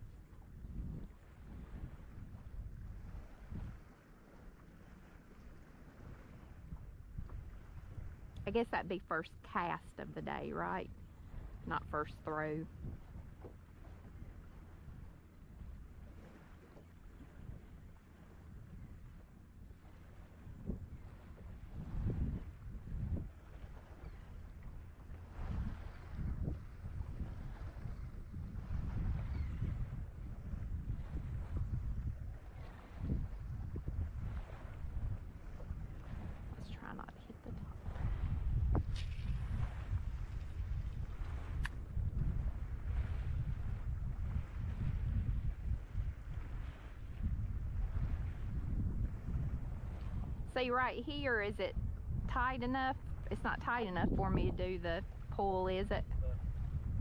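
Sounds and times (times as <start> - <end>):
wind buffeting microphone: 0.0 - 57.0
faint sharp clicks: 41.6 - 41.8.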